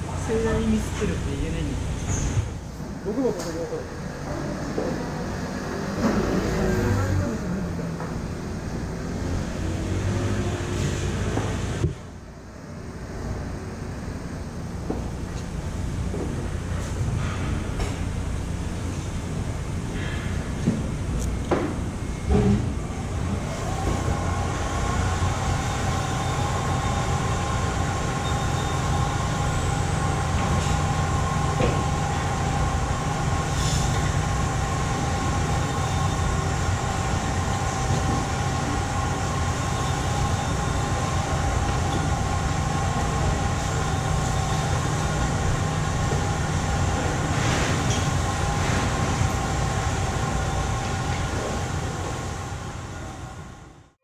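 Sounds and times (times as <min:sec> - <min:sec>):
machinery droning: 0:00.0 - 0:54.0.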